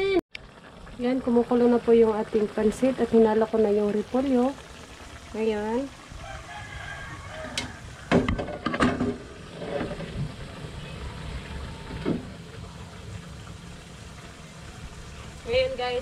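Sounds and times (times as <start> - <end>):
rooster crowing: 6.1 - 8.4.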